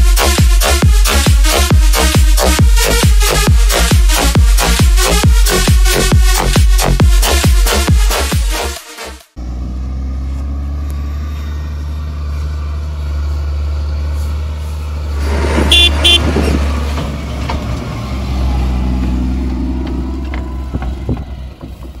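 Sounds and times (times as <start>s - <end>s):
tractor diesel engine running: 0.0s - 8.3s, 9.3s - 22.0s
horn toots: 15.6s - 16.4s.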